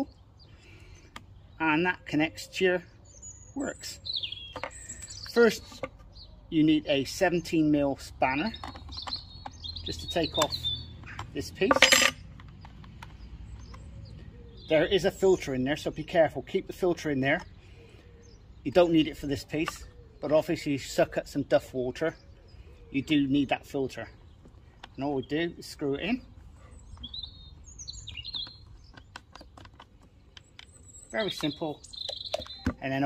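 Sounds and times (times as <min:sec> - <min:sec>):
bird chirping: 0:00.0 - 0:33.0
low outdoor background: 0:00.0 - 0:33.0
plastic cap screwing clicks: 0:08.6 - 0:11.6, 0:28.0 - 0:32.8.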